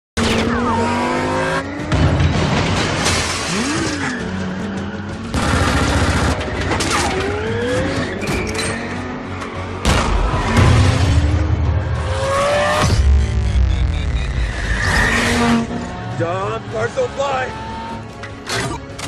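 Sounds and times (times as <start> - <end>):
car engine revving: 0.2 - 19.0
dramatic music score: 0.2 - 19.0
glass shattering: 2.1 - 4.0.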